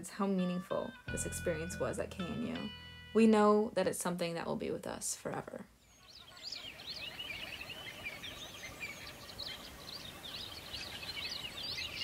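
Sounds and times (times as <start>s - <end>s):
small birds chirping: 5.7s - 12.0s.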